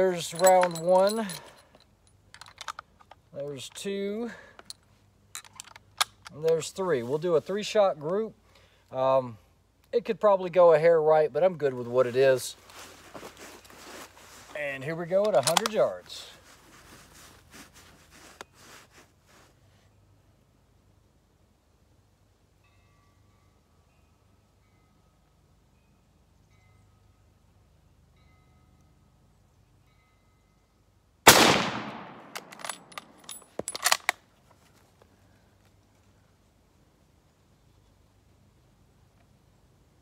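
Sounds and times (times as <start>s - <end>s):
rifle shot: 31.3s - 32.6s
rifle bolt clacking: 31.3s - 34.2s.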